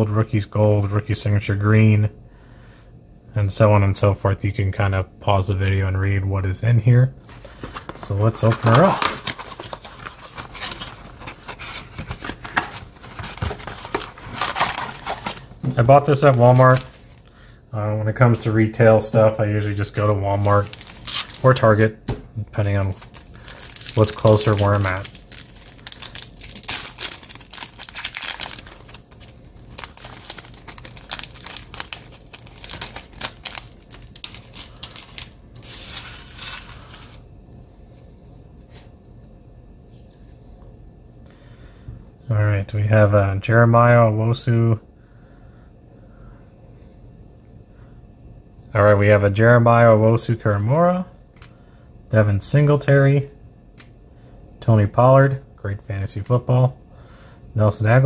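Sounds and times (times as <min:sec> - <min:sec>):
foil packs crinkling: 0:07.2 - 0:17.3, 0:19.8 - 0:21.8, 0:22.6 - 0:37.2.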